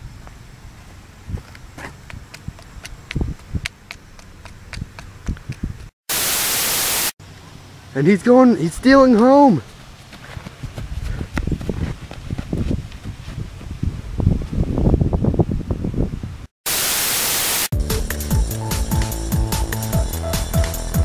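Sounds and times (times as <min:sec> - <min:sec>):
wind buffeting microphone: 0:01.2 - 0:05.9, 0:10.2 - 0:16.5
white-noise static burst: 0:06.1 - 0:07.2, 0:16.7 - 0:17.7
music with steady beat: 0:17.8 - 0:21.0.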